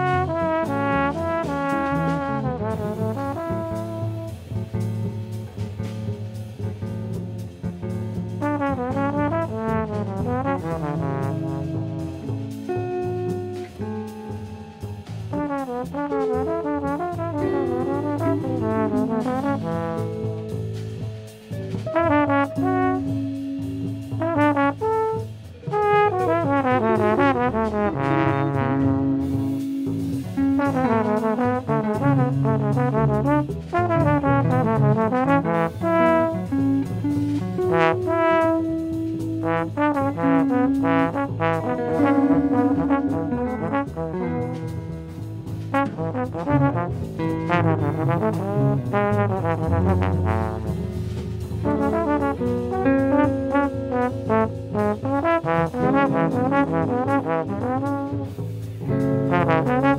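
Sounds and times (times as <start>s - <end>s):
trombone playing: 0.0s - 5.6s, 8.2s - 59.9s
drums: 0.0s - 59.9s
guitar: 0.0s - 59.9s
upright bass line: 0.0s - 59.9s.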